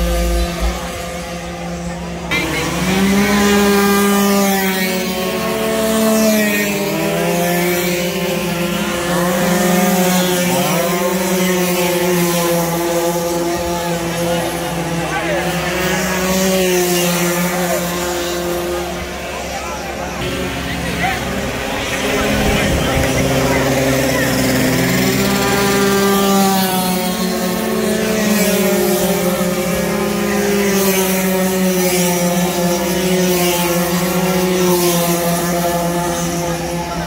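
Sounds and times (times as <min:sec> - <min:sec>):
people talking: 0:00.0 - 0:37.0
scooter engines revving high: 0:00.0 - 0:37.0.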